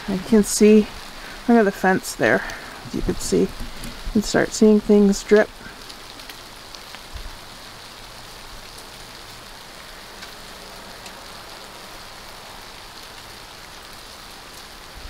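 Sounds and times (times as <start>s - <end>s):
icy branches rattling in wind: 0.0s - 15.0s.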